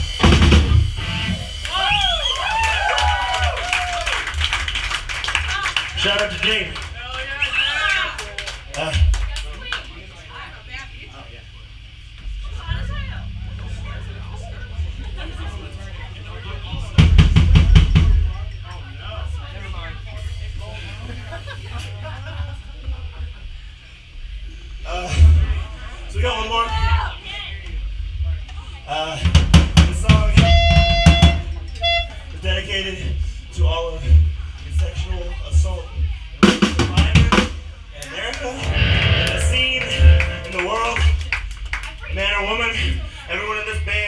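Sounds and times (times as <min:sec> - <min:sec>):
drum kit playing: 0:00.0 - 0:02.0, 0:12.6 - 0:19.1, 0:29.3 - 0:31.4, 0:36.4 - 0:37.6, 0:38.5 - 0:41.6
crowd chatter: 0:06.6 - 0:29.2, 0:35.2 - 0:43.3
steady low hum: 0:09.1 - 0:26.3, 0:37.6 - 0:43.3.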